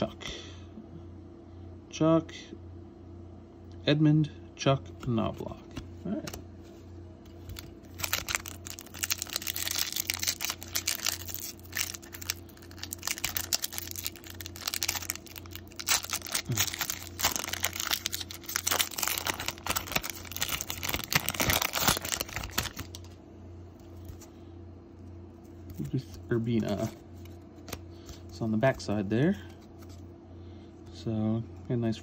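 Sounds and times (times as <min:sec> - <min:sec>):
steady low hum: 0:00.0 - 0:32.0
foil wrapper tearing and crinkling: 0:07.4 - 0:23.1.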